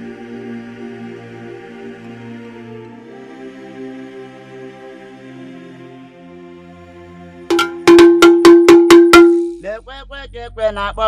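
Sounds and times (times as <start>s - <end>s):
metal bell struck rapidly: 7.5s - 9.6s.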